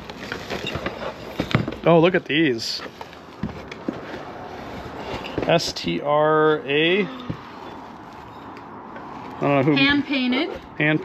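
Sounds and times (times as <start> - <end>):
rustling of paper and books: 0.0 - 11.0.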